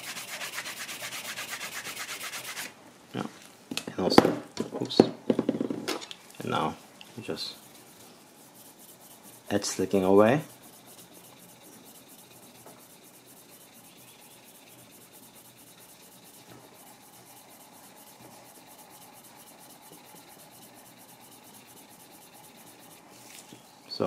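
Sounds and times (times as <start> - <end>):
edge slicker rubbing leather: 0.0 - 2.7, 7.3 - 23.5.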